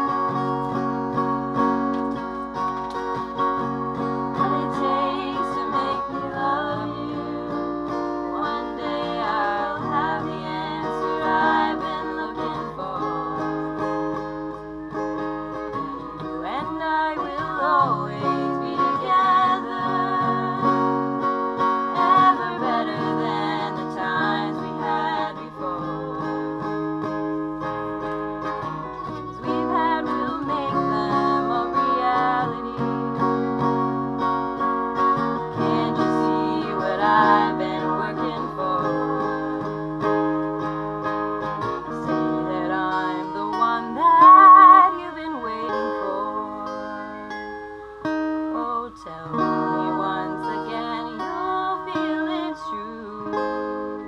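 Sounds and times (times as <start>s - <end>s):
woman singing: 0.0s - 1.8s, 3.0s - 34.3s, 35.0s - 54.0s
acoustic guitar: 0.0s - 54.0s.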